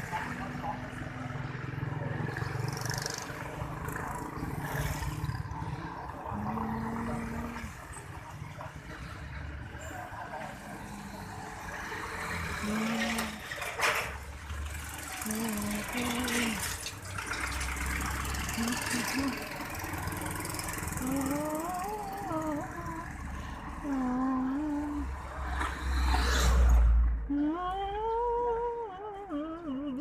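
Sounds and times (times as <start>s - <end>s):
traffic rumble: 0.0s - 30.0s
person humming: 12.6s - 13.4s, 15.2s - 16.7s, 18.5s - 19.5s, 20.9s - 23.2s, 23.8s - 25.1s, 27.3s - 30.0s.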